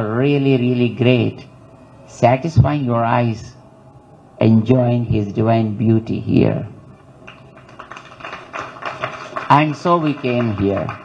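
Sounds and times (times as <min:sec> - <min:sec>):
crowded hall background noise: 0:00.0 - 0:11.0.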